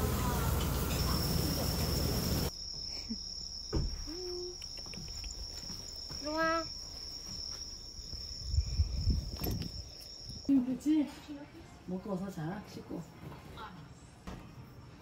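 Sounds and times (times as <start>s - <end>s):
cricket singing high note: 0.9s - 10.7s.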